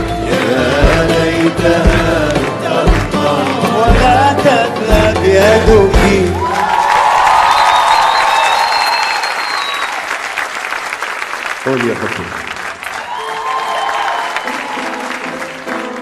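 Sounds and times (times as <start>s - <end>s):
audience applauding: 6.2s - 16.0s
audience cheering: 6.2s - 16.0s.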